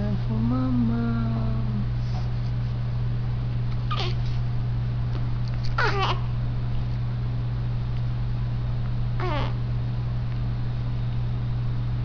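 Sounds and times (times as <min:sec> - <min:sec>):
steady low hum: 0:00.0 - 0:12.0
baby whimpering: 0:03.9 - 0:04.3, 0:05.8 - 0:06.3, 0:09.2 - 0:09.6.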